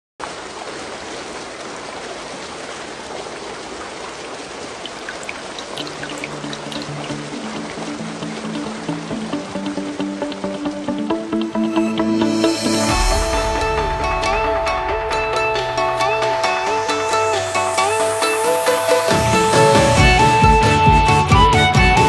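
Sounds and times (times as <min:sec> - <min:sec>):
flowing water rushing: 0:00.2 - 0:20.7
bright droplet-like plinks: 0:04.8 - 0:07.2.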